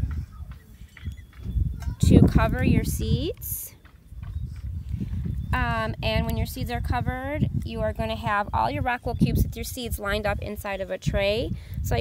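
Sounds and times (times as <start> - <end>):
low microphone rumble: 0.0 - 12.0.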